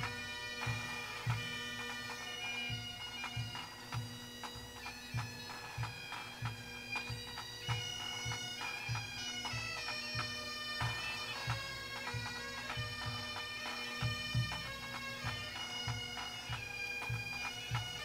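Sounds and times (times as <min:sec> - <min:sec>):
bagpipes playing melody: 0:00.0 - 0:18.0.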